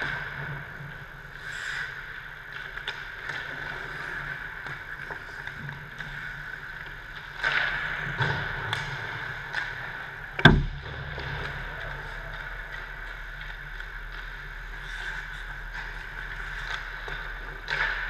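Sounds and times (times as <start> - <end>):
hockey sticks clicking on pucks: 0.0 - 18.0
steady background hum: 0.0 - 18.0
skate blades scraping ice: 11.1 - 18.0.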